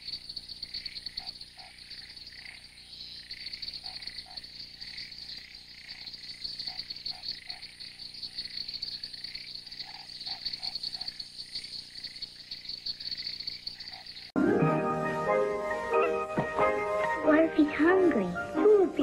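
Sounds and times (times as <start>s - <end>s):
low frog calls: 0.0s - 14.3s
insects high pulsing trill: 0.0s - 14.4s.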